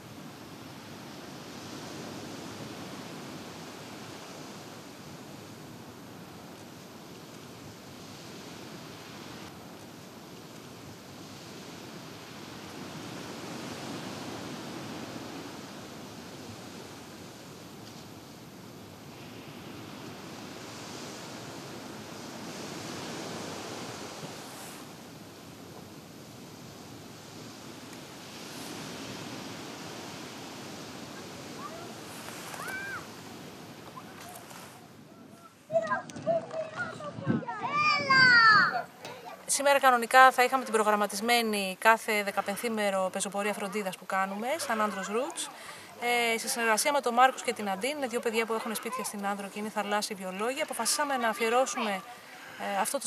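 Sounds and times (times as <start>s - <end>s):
waves breaking on beach: 0.0s - 53.0s.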